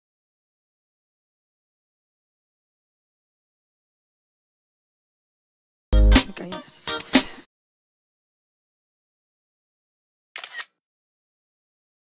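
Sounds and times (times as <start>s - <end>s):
camera shutter clicks: 10.4s - 10.8s.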